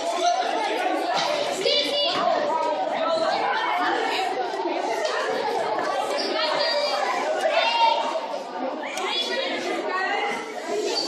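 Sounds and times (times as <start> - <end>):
chatter of young voices: 0.0 - 11.0.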